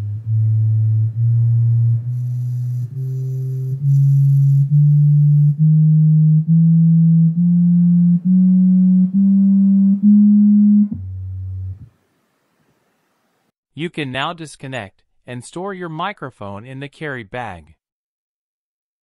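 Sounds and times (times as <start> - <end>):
low sine test tones: 0.0 - 12.0.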